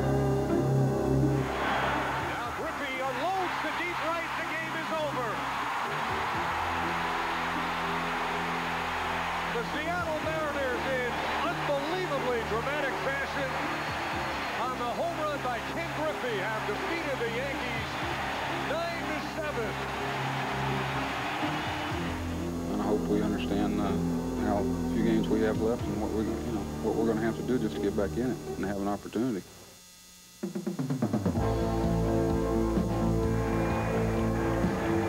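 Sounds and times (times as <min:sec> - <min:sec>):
slow background music: 0:00.0 - 0:02.5, 0:04.9 - 0:29.0, 0:30.5 - 0:35.0
crowd cheering and shouting: 0:01.4 - 0:22.4.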